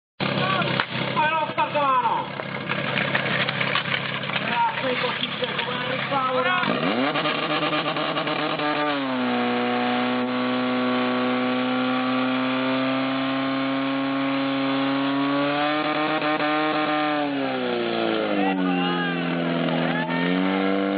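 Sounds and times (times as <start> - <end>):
fire pump engine revving: 0.2 - 20.9.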